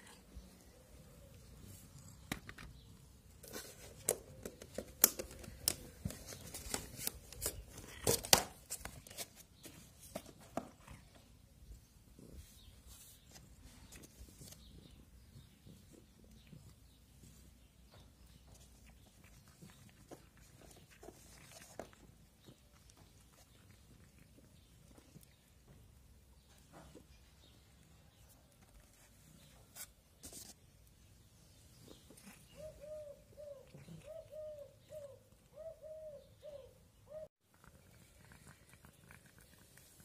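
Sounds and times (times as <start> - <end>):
dove cooing: 32.5 - 37.3.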